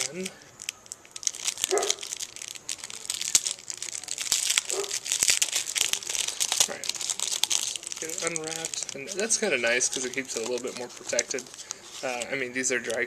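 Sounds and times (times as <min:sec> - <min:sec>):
plastic wrapper crinkling: 0:00.0 - 0:13.0.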